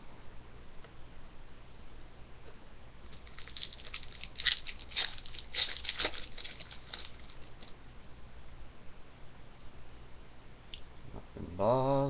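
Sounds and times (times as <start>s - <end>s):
card pack wrapper crinkling and tearing: 3.1s - 7.7s.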